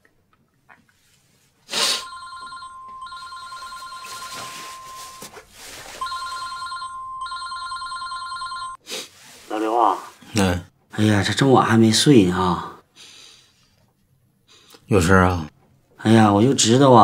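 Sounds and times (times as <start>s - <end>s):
phone ringtone trilling: 1.9s - 5.4s, 6.0s - 8.8s.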